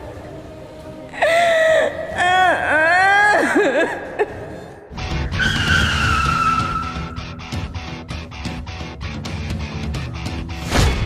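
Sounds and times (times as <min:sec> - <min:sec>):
dramatic background music: 0:00.0 - 0:11.0
car tyres screeching: 0:05.3 - 0:07.3.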